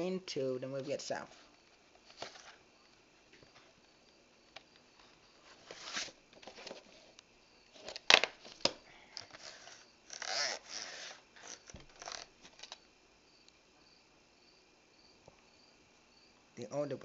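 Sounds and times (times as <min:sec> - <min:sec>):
rustle of tape sleeve: 0:05.0 - 0:12.8.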